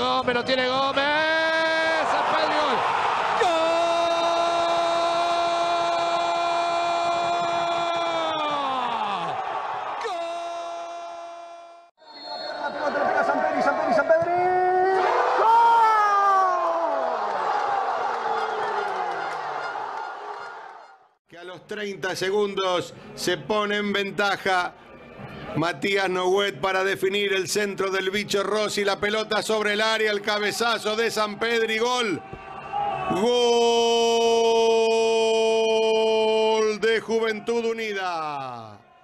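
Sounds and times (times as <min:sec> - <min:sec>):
crowd noise: 0:17.0 - 0:21.0.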